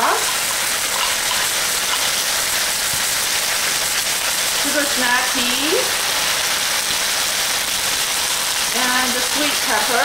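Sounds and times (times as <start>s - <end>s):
food sizzling in hot oil: 0.0s - 10.0s.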